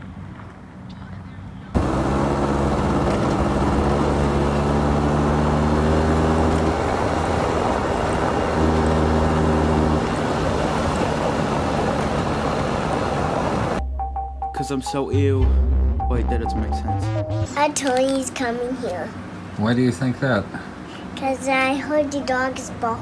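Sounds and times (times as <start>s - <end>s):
road and wind noise: 0.0s - 13.8s, 17.6s - 23.0s
scooter engine running: 1.8s - 13.8s.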